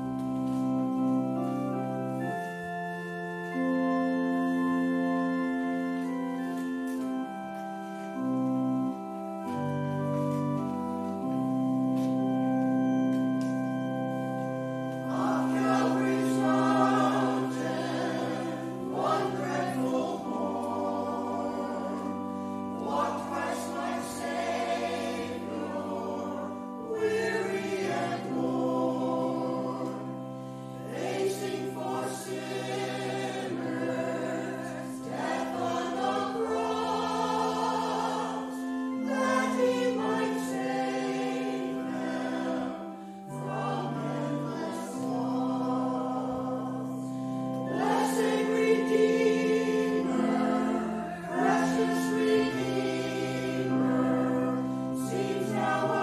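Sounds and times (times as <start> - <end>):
choir singing a hymn: 0.0 - 56.0
long held low accompanying notes: 0.0 - 56.0.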